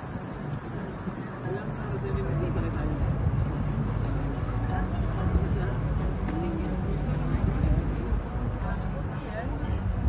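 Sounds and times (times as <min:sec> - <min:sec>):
boat engine humming: 0:00.0 - 0:10.0
music: 0:00.0 - 0:10.0
voices: 0:00.0 - 0:10.0.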